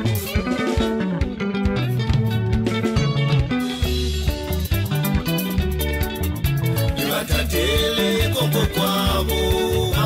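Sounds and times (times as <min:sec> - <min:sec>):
plucked guitar lines: 0:00.0 - 0:10.0
steady drum beat: 0:00.0 - 0:10.0
walking bass guitar: 0:00.0 - 0:10.0.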